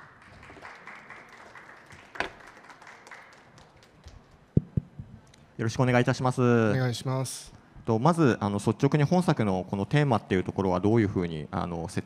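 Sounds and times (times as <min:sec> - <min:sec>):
single loud clap: 0:00.0 - 0:03.9
audience applauding: 0:00.0 - 0:04.4.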